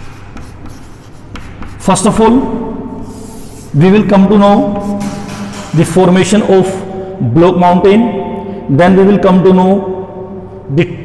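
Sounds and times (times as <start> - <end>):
chalk scratching on chalkboard: 0.0 - 2.2, 3.0 - 5.6.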